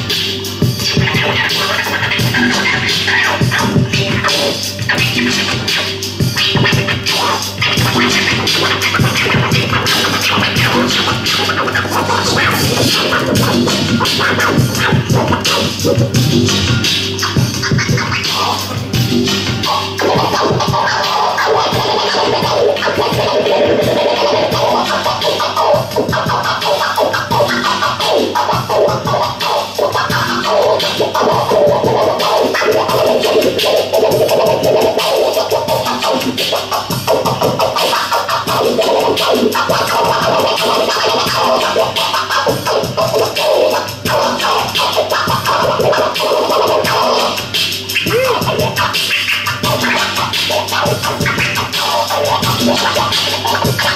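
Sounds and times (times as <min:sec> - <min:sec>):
hip hop beat: 0:00.0 - 0:53.9
vinyl record scratching: 0:00.0 - 0:53.9.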